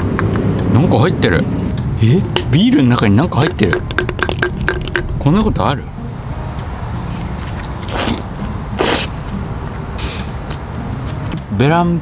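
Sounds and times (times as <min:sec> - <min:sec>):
short hissy noises: 0:08.8 - 0:09.2, 0:10.0 - 0:10.4.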